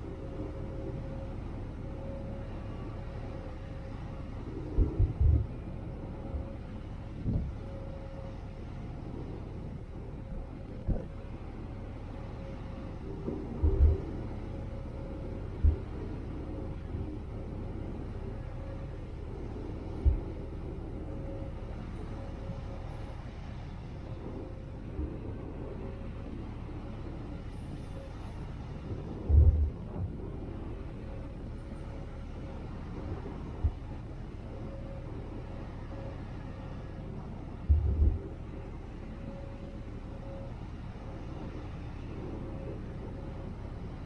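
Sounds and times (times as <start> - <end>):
faint steady hum: 0.0 - 44.0
ship engines rumbling: 0.0 - 44.0.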